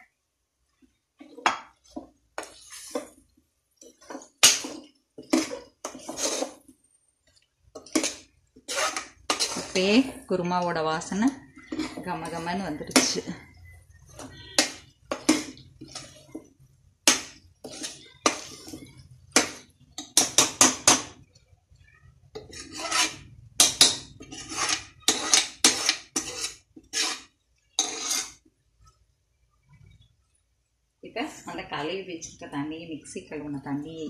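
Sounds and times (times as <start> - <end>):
spoon scraping and knocking pot: 1.2 - 6.7, 7.3 - 21.3, 22.3 - 28.5.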